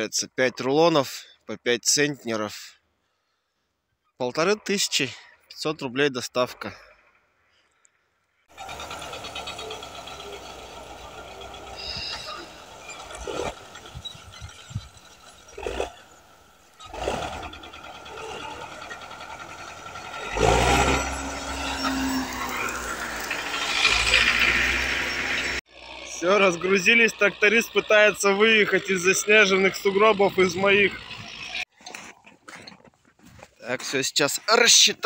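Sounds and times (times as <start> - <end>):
tractor engine running: 8.5 - 31.7.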